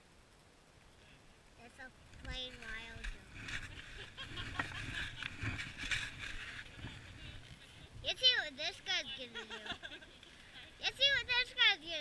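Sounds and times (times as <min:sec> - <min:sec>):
clicks and rustling near microphone: 0:02.0 - 0:08.9.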